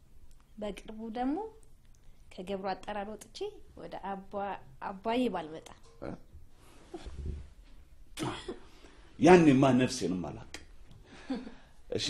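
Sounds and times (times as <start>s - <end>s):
person coughing: 8.2s - 8.7s.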